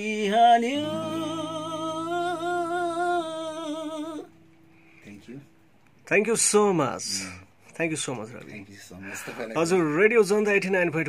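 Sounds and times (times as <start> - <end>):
man singing with vibrato: 0.0 - 4.5
acoustic guitar chord ringing: 0.0 - 7.7.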